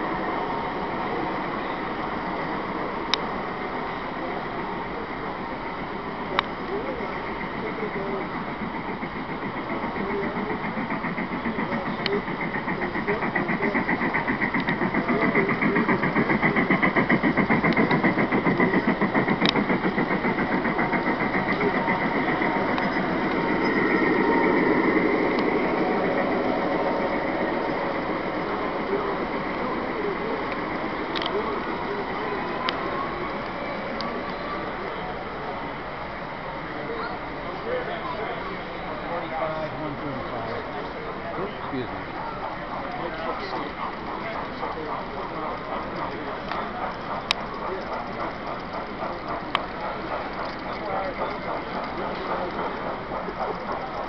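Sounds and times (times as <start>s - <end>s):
crowd chatter: 0.0s - 54.0s
model train clattering on track: 4.1s - 54.0s.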